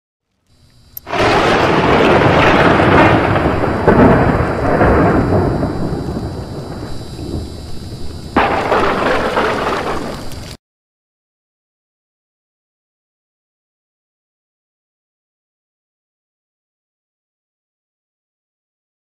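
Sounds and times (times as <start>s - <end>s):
sharp crack: 1.0s - 10.6s
thunder-like rumble: 1.1s - 10.4s.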